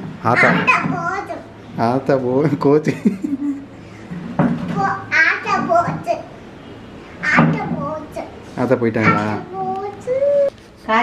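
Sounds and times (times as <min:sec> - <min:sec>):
young child talking: 0:00.3 - 0:01.5, 0:04.7 - 0:06.3, 0:07.2 - 0:08.4, 0:09.0 - 0:10.5.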